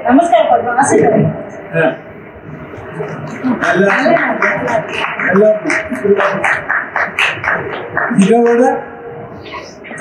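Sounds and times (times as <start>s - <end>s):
rapid hand claps: 3.6s - 8.7s.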